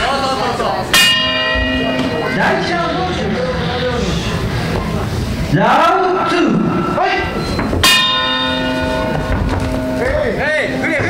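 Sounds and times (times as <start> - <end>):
bell ringing with metallic tone: 0.9 - 4.0, 6.1 - 10.9.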